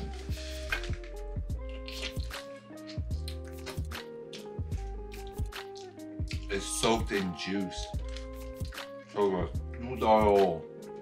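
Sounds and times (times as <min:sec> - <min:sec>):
wet chewing and slurping: 0:00.0 - 0:06.5, 0:07.8 - 0:09.0
background music: 0:00.0 - 0:11.0
squishy mouth clicks: 0:00.7 - 0:06.5.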